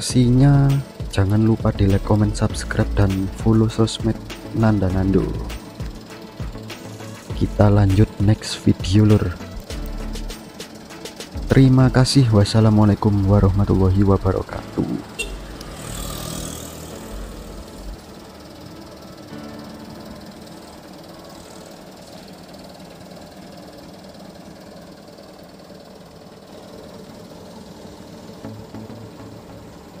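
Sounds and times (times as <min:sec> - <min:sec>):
motor scooter engine passing: 0:00.0 - 0:12.1, 0:13.0 - 0:30.0.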